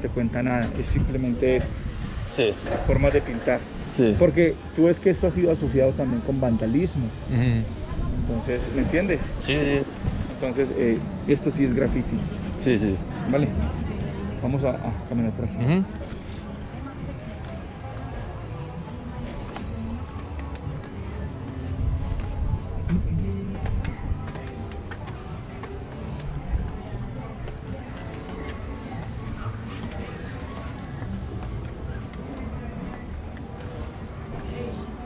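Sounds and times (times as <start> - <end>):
faint music: 0.0 - 35.0
indistinct voices: 15.0 - 35.0
low rumble on microphone: 16.2 - 34.2
footsteps on concrete: 19.2 - 35.0.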